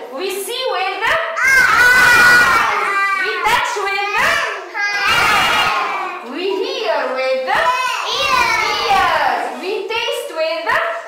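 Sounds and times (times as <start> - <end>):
children calling out: 1.4 - 9.6.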